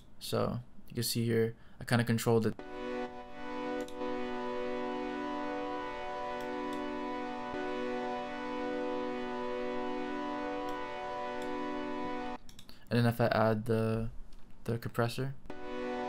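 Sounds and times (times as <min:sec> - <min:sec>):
sustained synthesizer chord: 0:02.6 - 0:12.4, 0:15.5 - 0:16.0.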